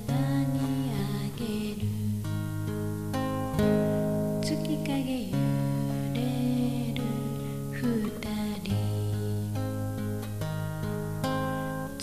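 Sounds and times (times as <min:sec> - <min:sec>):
acoustic guitar strummed chords: 0:00.0 - 0:12.0.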